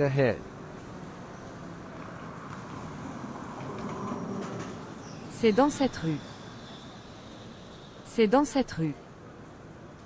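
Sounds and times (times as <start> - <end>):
passing city traffic: 0.0 - 10.0.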